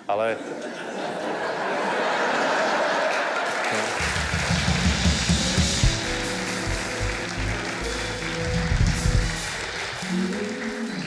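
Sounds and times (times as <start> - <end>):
live band playing: 3.9 - 11.0
drum and bass hits: 4.1 - 10.0.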